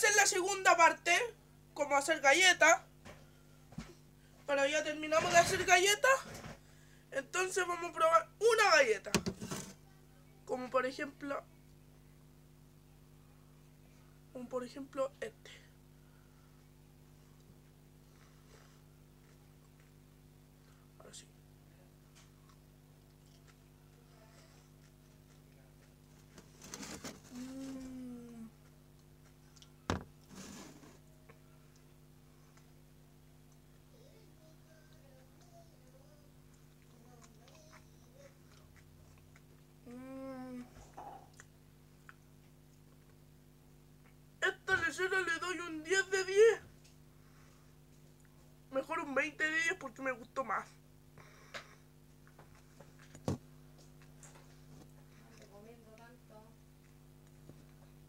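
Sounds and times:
steady low hum: 0.0s - 58.0s
person chewing crunchy cookie: 22.2s - 26.4s, 36.4s - 39.9s
person humming mmm: 27.3s - 28.6s, 39.8s - 41.3s.

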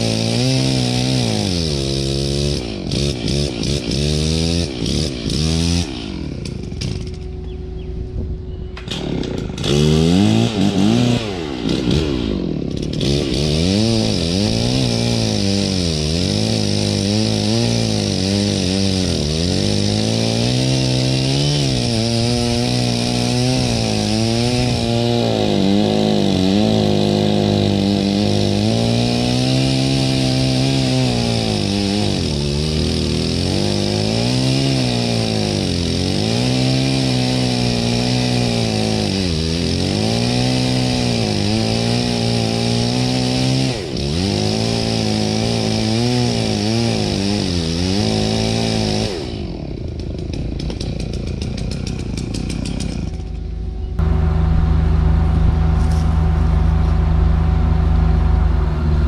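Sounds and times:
chainsaw cutting wet wood: 0.0s - 7.6s, 8.8s - 54.2s
vehicle engine running: 53.1s - 59.0s.

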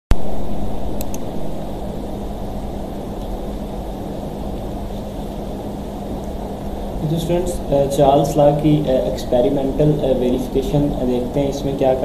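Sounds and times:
faint steady hum: 0.1s - 12.0s
low rumbling background noise: 0.1s - 12.0s
sharp clicks: 1.0s - 1.3s.

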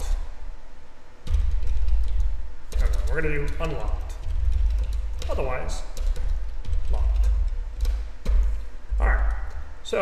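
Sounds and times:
keyboard keystrokes: 1.3s - 9.7s.

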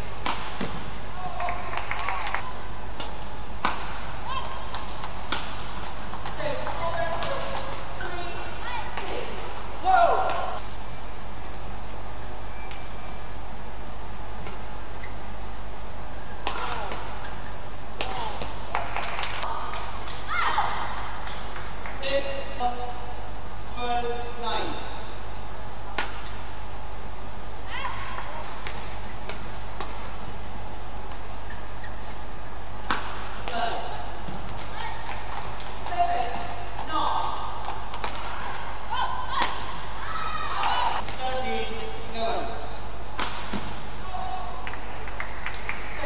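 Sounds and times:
racket striking shuttlecock: 0.2s - 0.8s, 1.9s - 7.8s, 25.9s - 26.4s, 32.8s - 38.6s, 43.1s - 43.8s
shoes squeaking on court: 31.3s - 32.3s.

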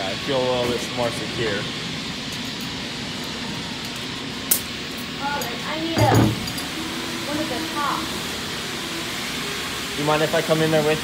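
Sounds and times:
steady hissing noise: 0.0s - 11.0s.

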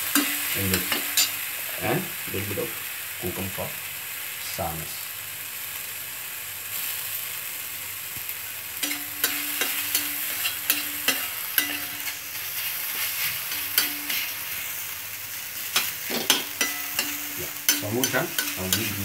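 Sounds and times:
steel spatula scraping a pan: 0.0s - 1.4s, 8.8s - 14.9s, 15.6s - 19.0s
eggs sizzling in a pan: 0.0s - 19.0s.

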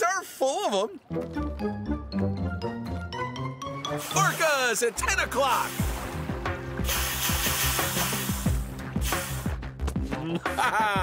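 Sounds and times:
background music with steady beat: 1.1s - 11.0s
hissing whoosh of spray: 3.9s - 4.7s, 6.7s - 9.5s.

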